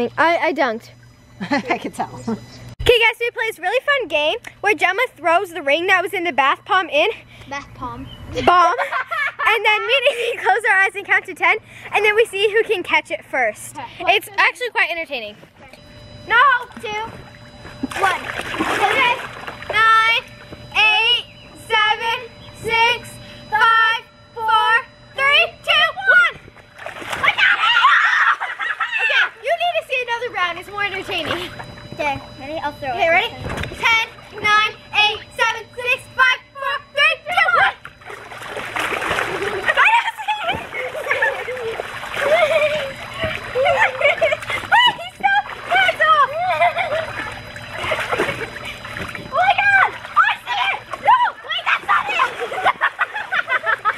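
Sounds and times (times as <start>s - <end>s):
water splashing in pool: 16.5s - 20.7s, 25.6s - 29.5s, 30.6s - 32.2s, 37.3s - 53.9s
girls' voices: 18.8s - 26.5s, 27.2s - 38.0s, 39.4s - 52.8s.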